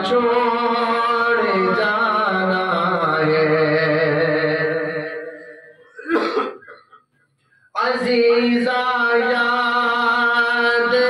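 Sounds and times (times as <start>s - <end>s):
man clearing throat: 5.8s - 7.1s.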